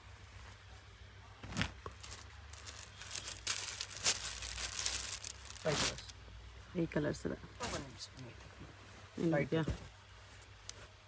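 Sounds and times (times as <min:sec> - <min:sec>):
fabric rustling and crinkling: 0:01.4 - 0:06.1.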